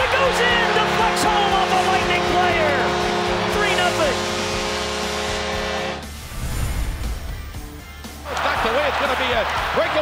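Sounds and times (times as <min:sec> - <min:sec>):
held music chord: 0:00.6 - 0:06.1
deep low swell: 0:06.0 - 0:07.8.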